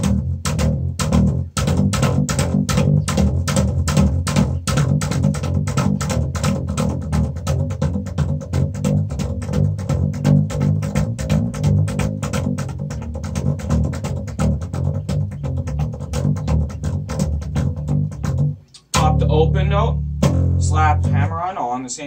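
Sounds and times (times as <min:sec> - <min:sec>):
slap bass guitar riff: 0:00.0 - 0:21.8.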